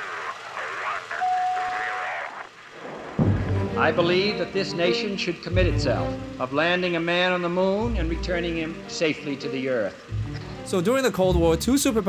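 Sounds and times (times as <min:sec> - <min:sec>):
person speaking over radio: 0:00.0 - 0:02.3.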